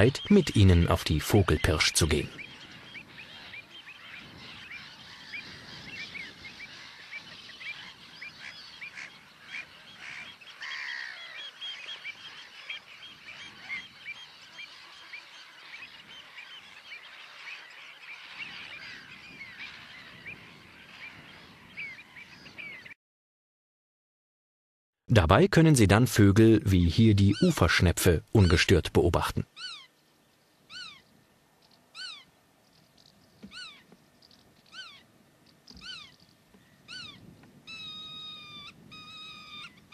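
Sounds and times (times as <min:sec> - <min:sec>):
seabirds calling: 0:00.0 - 0:23.0, 0:26.4 - 0:39.9.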